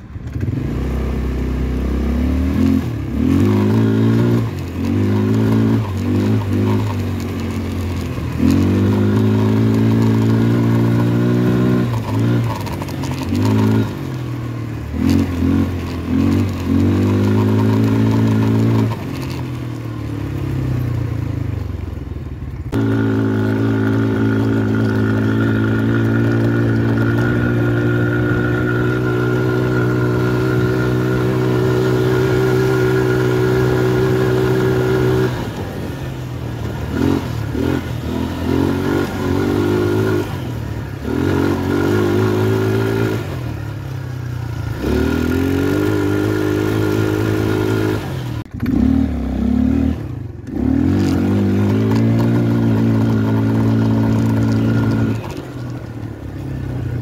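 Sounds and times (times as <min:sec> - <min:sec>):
atv engine revving: 0:00.0 - 0:57.0.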